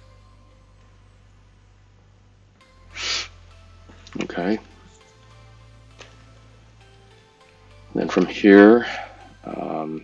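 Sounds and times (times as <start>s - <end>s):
steady low hum: 0.0s - 10.0s
breath at microphone: 2.9s - 3.4s.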